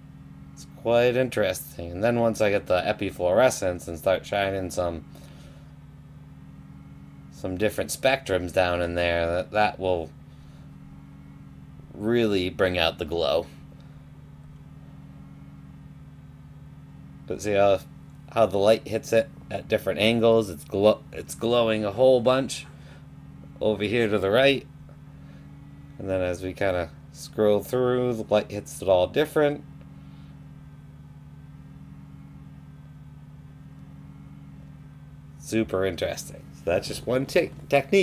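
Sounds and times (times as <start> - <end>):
electrical equipment hum: 0.0 - 38.0.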